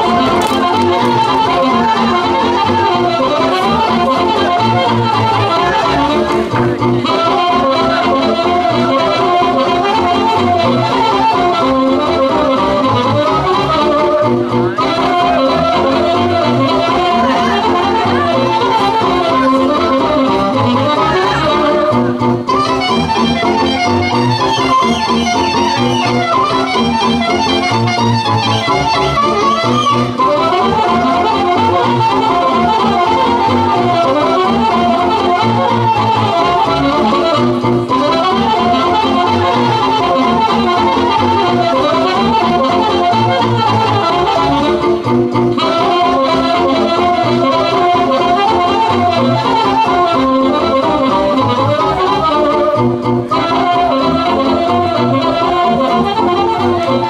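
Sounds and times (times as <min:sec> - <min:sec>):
folk dance music: 0:00.0 - 0:57.0.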